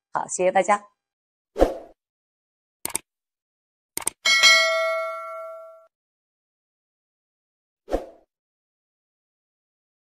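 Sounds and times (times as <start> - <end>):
mouse clicks: 4.0 - 4.2
notification bell ding: 4.3 - 5.9.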